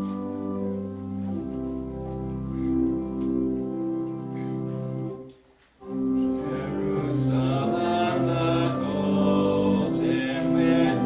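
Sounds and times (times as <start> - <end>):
hymn on sustained keyboard: 0.0 - 11.0
congregation singing: 5.8 - 11.0.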